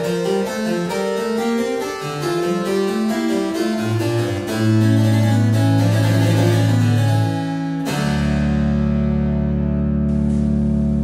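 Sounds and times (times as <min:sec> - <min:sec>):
harpsichord and organ playing: 0:00.0 - 0:08.8.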